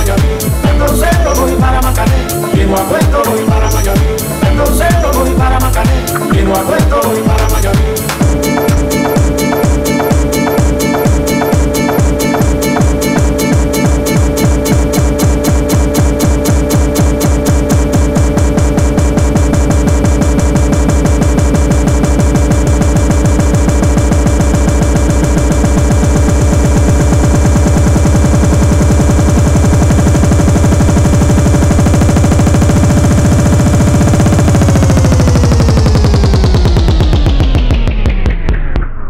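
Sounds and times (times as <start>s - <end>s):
tech house dance music: 0.0s - 38.7s.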